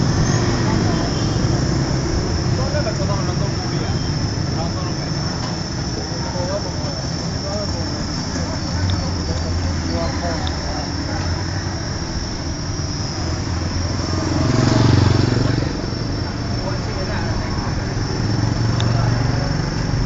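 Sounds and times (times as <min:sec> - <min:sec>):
low hum of vehicles: 0:00.0 - 0:20.0
people's voices: 0:00.0 - 0:20.0
motor vehicle passing close: 0:07.0 - 0:20.0.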